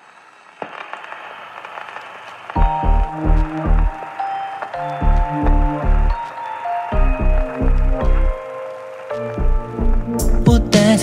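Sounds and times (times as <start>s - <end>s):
crackling noise: 0.0s - 11.0s
pop song beat: 9.2s - 11.0s.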